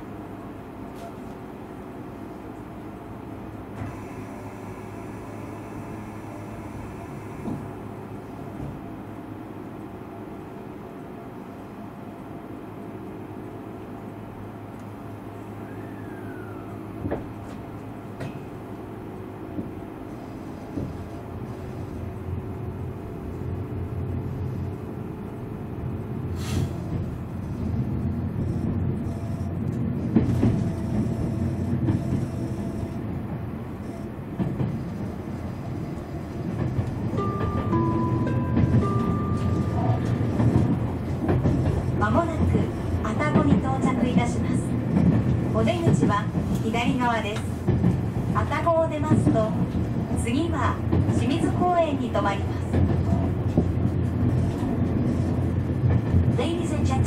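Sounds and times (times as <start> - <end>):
train wheels rumbling on rails: 0.0 - 57.0
train motor tones: 3.7 - 8.0, 15.4 - 18.3, 28.4 - 44.5.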